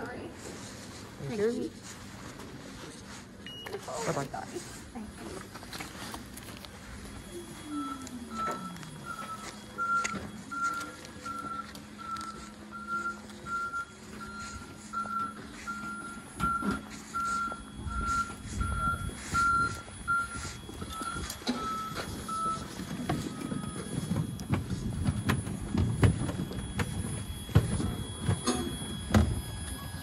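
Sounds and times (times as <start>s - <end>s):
reversing alarm beeping: 0.0s - 30.0s.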